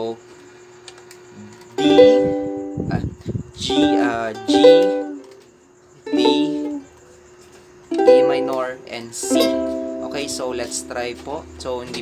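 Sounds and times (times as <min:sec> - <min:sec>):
ukulele chords strummed: 0:01.8 - 0:03.0, 0:03.6 - 0:05.4, 0:06.0 - 0:06.8, 0:07.9 - 0:11.3.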